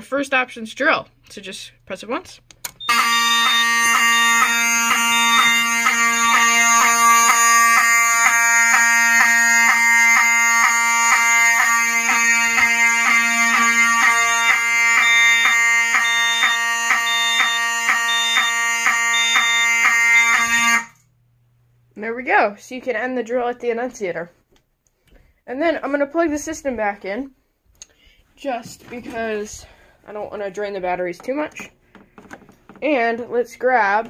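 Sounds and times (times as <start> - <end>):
fire alarm horn fluttering tone: 2.8 - 21.1.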